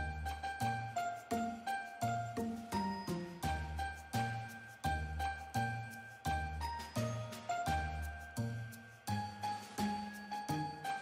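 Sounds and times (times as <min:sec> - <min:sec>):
tinkling bell-like tune: 0:00.0 - 0:11.0.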